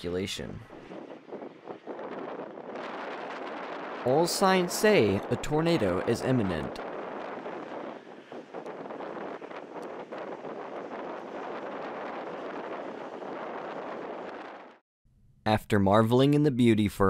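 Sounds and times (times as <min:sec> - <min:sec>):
strong wind on microphone: 0:00.0 - 0:14.8.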